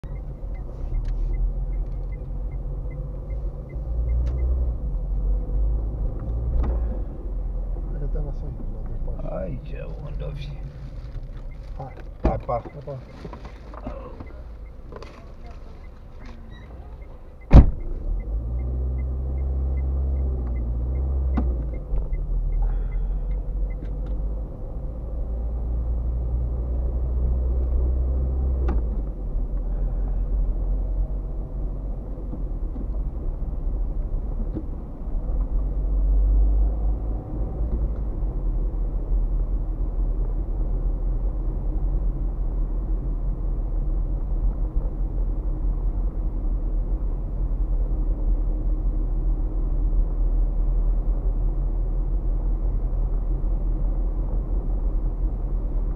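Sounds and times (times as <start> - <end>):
car engine and road rumble: 0.0 - 55.9
light regular ticking: 9.9 - 24.2.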